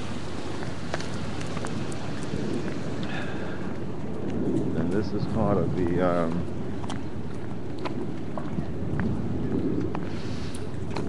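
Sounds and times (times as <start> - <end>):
outdoor street noise: 0.0 - 11.0
wind on microphone: 0.0 - 11.0.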